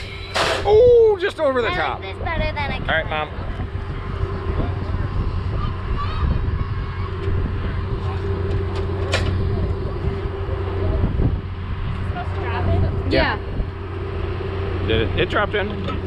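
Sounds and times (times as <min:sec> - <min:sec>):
low motor hum: 0:00.0 - 0:16.0.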